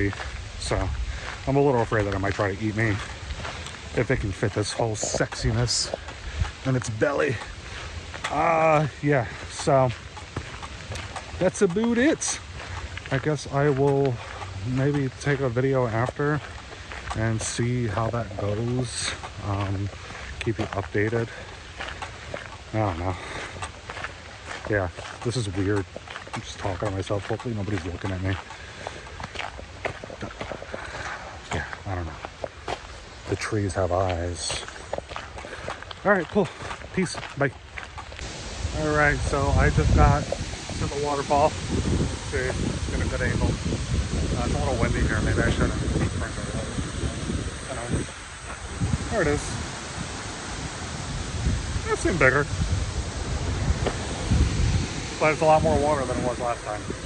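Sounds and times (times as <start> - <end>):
waterfall rushing: 0.0 - 37.4, 38.0 - 57.0
clothing and gear rustling: 0.0 - 45.5
footsteps on woodland trail: 0.0 - 57.0
wind buffeting microphone: 0.0 - 57.0.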